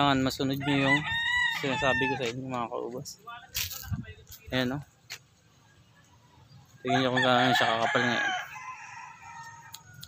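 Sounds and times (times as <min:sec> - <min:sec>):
rooster crowing: 0:00.5 - 0:02.3, 0:06.8 - 0:10.0.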